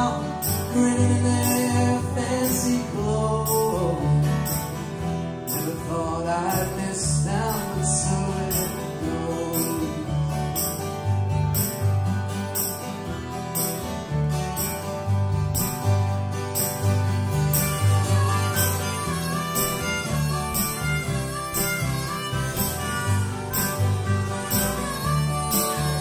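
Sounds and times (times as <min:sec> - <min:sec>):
plucked upright bass: 0:00.0 - 0:26.0
strummed acoustic guitars: 0:00.0 - 0:26.0
harmonica with bent notes: 0:15.6 - 0:26.0.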